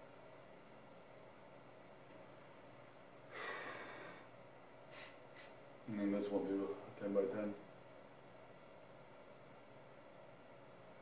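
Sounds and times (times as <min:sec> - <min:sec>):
man breathing out heavily: 0:03.3 - 0:05.6.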